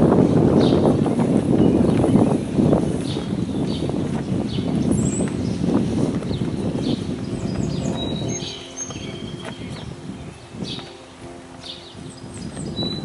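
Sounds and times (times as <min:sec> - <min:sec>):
birds chirping: 0:00.0 - 0:13.0
wind rumbling on microphone: 0:00.0 - 0:13.0.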